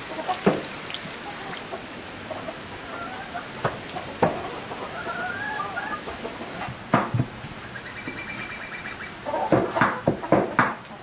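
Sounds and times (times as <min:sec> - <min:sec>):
chickens clucking: 0:00.0 - 0:11.0
sharp knocks: 0:06.9 - 0:07.6, 0:09.5 - 0:10.8.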